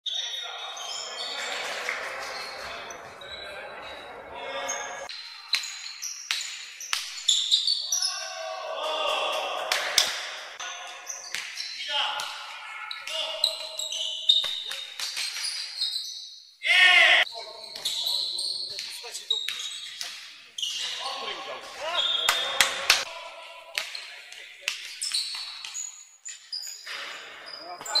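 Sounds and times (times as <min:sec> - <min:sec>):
sneaker squeaks: 0:00.1 - 0:08.3, 0:10.6 - 0:16.5, 0:17.3 - 0:22.8, 0:23.8 - 0:28.0
loud shout: 0:07.9 - 0:10.1, 0:16.6 - 0:17.3
players calling out: 0:20.6 - 0:25.2.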